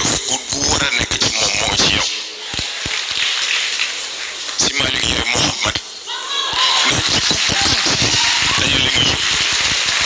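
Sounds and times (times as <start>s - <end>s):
audience applauding: 6.6s - 10.0s.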